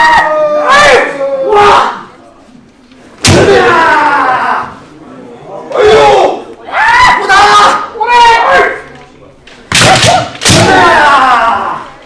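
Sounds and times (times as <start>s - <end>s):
people shouting drawn-out cries: 0.0s - 2.1s, 3.3s - 4.9s, 5.7s - 8.8s, 9.8s - 12.0s.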